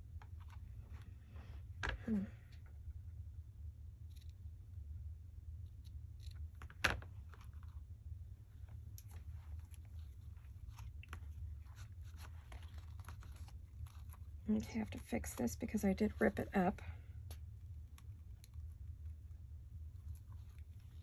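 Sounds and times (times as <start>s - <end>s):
steady low hum: 0.0s - 21.0s
paper and lace rustling: 8.6s - 16.8s.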